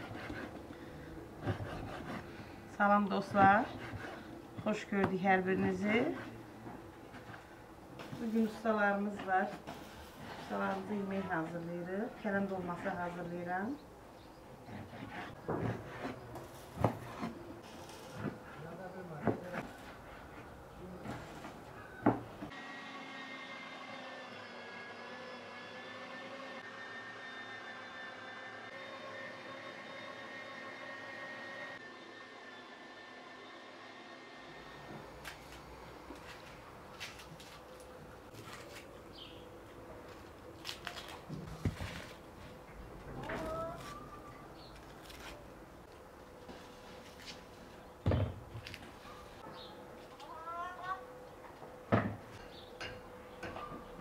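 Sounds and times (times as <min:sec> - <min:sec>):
electric meat grinder running: 0:22.5 - 0:34.9
onion peeling rustles: 0:35.3 - 0:39.0, 0:40.0 - 0:42.6, 0:43.3 - 0:45.6.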